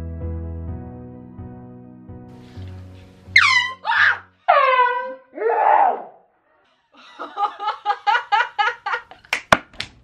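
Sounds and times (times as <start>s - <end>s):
young woman screaming: 3.4s - 6.2s
woman laughing: 6.9s - 9.2s.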